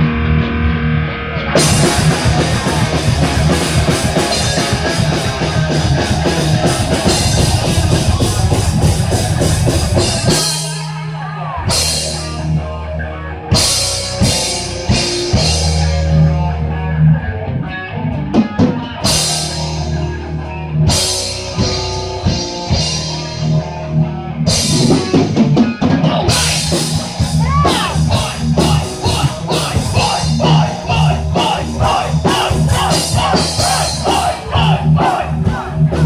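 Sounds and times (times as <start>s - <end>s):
distorted guitar and bass riffs: 0.0s - 36.0s
drum kit: 1.5s - 12.8s, 13.5s - 16.6s, 18.1s - 23.7s, 24.4s - 36.0s.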